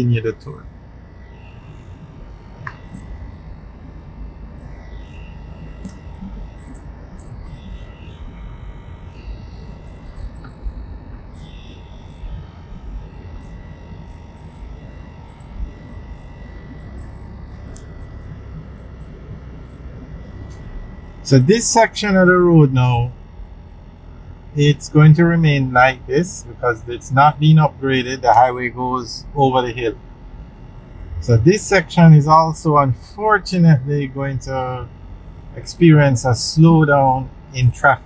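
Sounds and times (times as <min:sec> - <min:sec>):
car road and engine rumble: 0:00.0 - 0:38.0
faint high tone: 0:24.6 - 0:30.0, 0:31.1 - 0:34.9.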